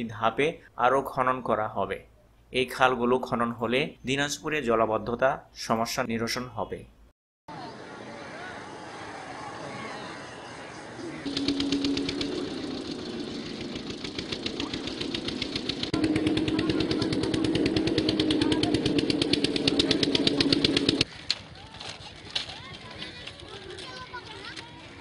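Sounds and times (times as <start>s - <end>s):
small engine knocking: 11.3s - 21.1s.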